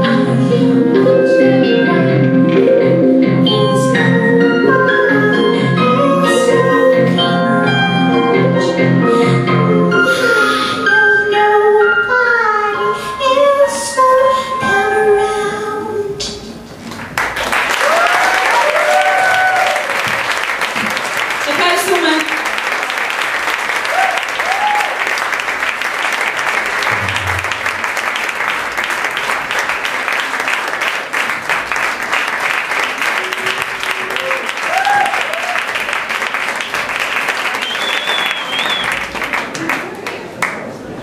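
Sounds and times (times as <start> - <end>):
audience applauding: 16.9 - 41.0.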